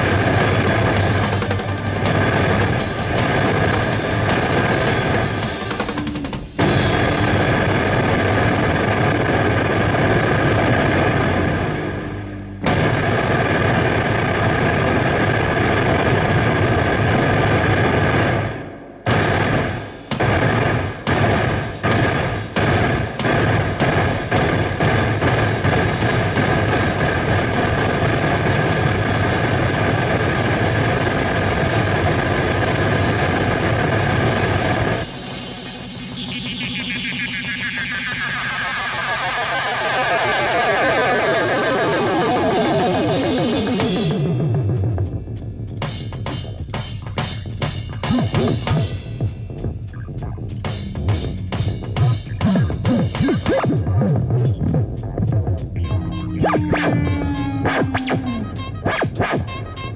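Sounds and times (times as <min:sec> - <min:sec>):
drums pounding: 0:00.0 - 0:59.9.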